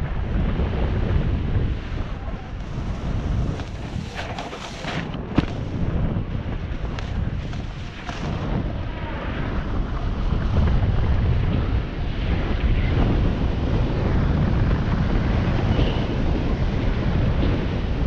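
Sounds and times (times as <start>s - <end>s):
snowboard scraping over snow: 0.0s - 18.0s
wind buffeting microphone: 0.0s - 18.0s.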